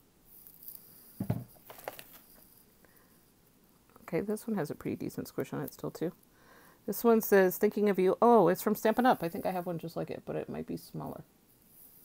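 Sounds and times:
rubber stamp knocking on desk mat: 1.2 - 1.5.

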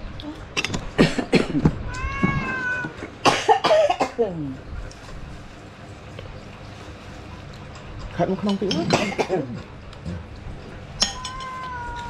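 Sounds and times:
cat meowing: 1.8 - 3.1, 11.0 - 12.0.

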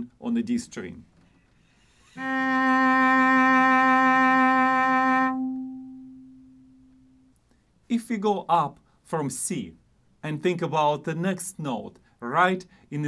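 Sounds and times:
cello long bowed note: 1.8 - 7.3.

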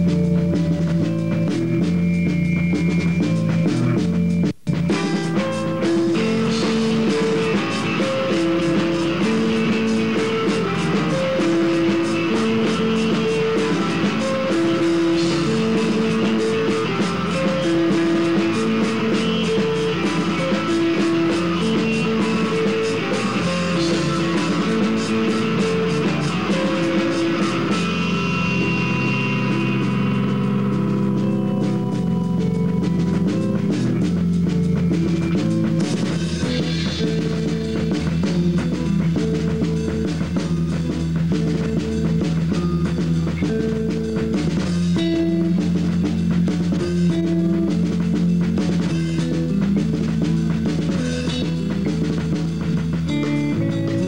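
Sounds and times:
drums and cymbals: 0.0 - 54.0
electric guitars riff: 0.0 - 54.0.

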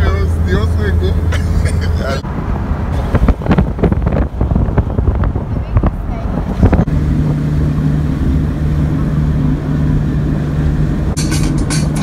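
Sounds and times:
car engine and road drone: 0.0 - 12.0
wind buffeting microphone: 2.2 - 8.2.

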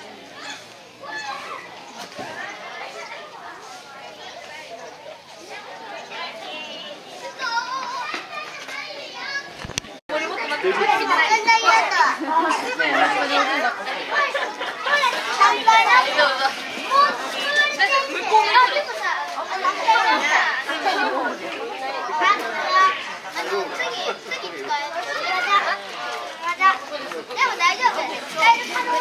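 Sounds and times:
children and adults chattering: 0.0 - 29.0.

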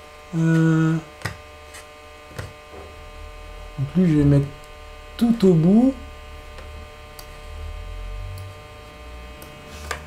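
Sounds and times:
electrical hum and buzz: 0.0 - 10.0.

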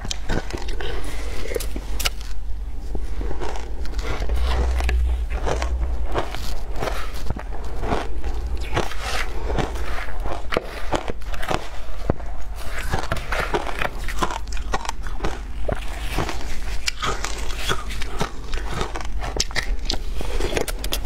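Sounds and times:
ice being chewed: 0.0 - 21.0.

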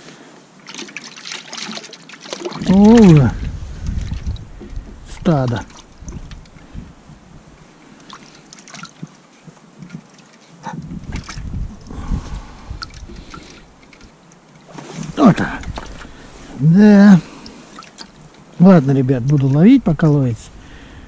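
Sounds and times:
low rumbling noise: 10.7 - 13.8.

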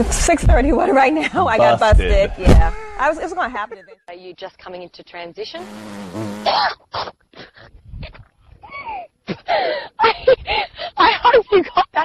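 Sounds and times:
woman squealing: 2.6 - 3.4, 8.0 - 9.1
woman laughing: 3.0 - 4.1, 8.0 - 12.0.

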